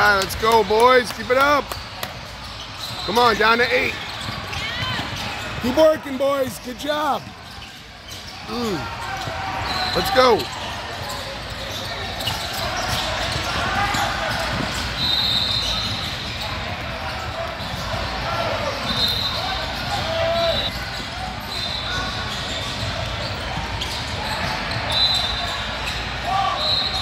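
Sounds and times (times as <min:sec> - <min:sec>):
crowd talking and calling out: 0:00.0 - 0:27.0
basketball bouncing on court: 0:00.3 - 0:05.9, 0:10.4 - 0:19.0
sneakers squeaking on court: 0:00.4 - 0:27.0.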